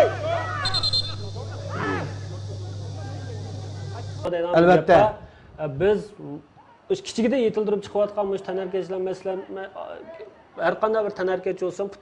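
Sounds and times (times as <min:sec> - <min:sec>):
steady low hum: 0:00.0 - 0:04.3
referee's whistle trill: 0:00.2 - 0:03.2.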